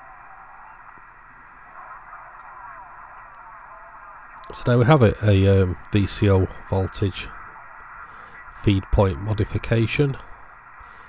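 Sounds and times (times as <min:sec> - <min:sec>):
radio receiver hiss: 0:00.0 - 0:11.0
weak wavering radio signal: 0:00.0 - 0:11.0.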